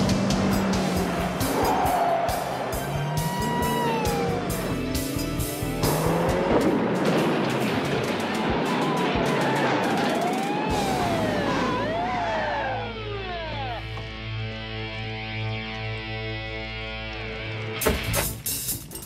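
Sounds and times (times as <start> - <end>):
dramatic chase music: 0.0 - 14.3
car noise: 0.0 - 15.3
police siren wailing: 0.8 - 5.2, 7.7 - 14.2.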